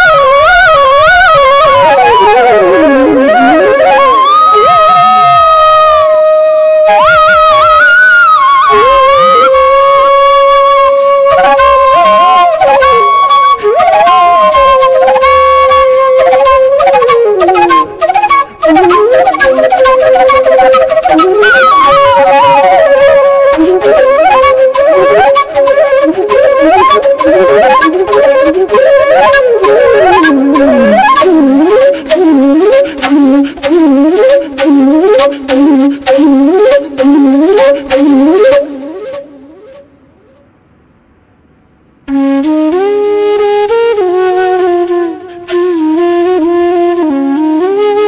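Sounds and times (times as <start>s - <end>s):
solo flute melody: 0.0s - 40.4s, 42.1s - 48.0s.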